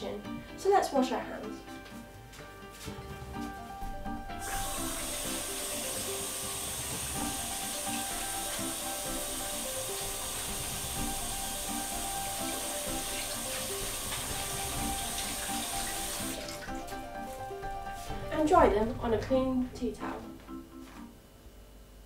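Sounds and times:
tap water running into sink: 4.2 - 17.1
hands washing under water: 4.4 - 18.3.

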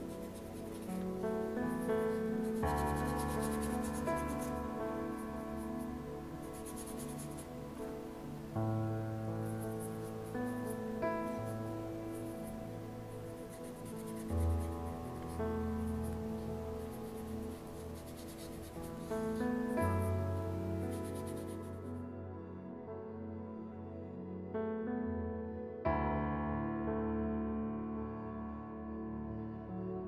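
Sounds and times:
bristle brush scratching paint: 0.0 - 7.6, 9.4 - 12.5, 13.2 - 21.8
soft background music: 0.0 - 30.0.

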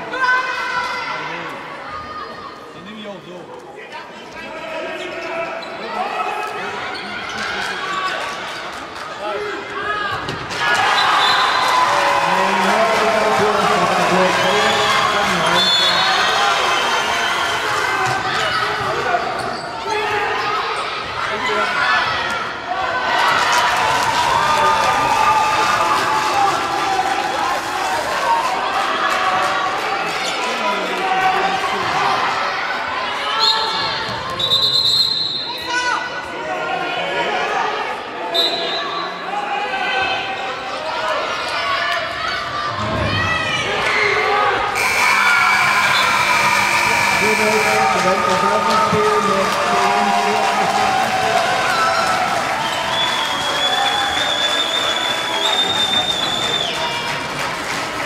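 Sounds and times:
players and spectators shouting: 9.2 - 34.4, 35.4 - 57.0.

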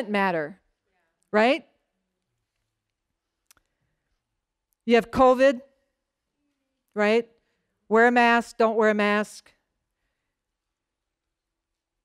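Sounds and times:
woman speaking: 0.0 - 1.8, 4.8 - 5.8, 6.8 - 9.6.

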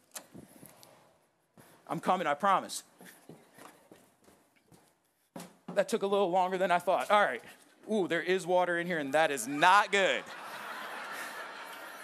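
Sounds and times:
faint footsteps: 2.9 - 6.0.

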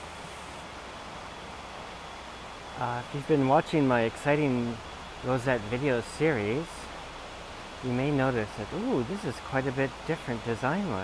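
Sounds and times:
outdoor background hiss: 0.0 - 11.0.

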